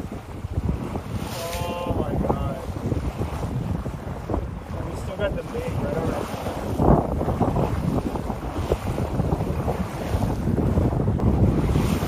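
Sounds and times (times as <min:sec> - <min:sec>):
water washing along hull: 0:00.0 - 0:12.0
wind buffeting microphone: 0:00.0 - 0:12.0.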